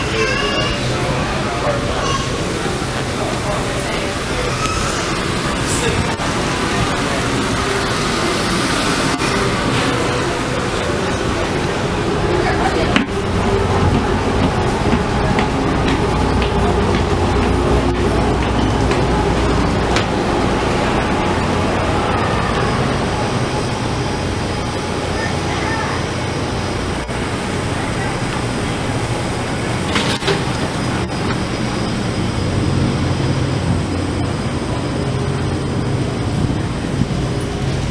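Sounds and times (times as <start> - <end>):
ferry machinery drone: 0.0 - 37.9
people talking: 0.0 - 37.9.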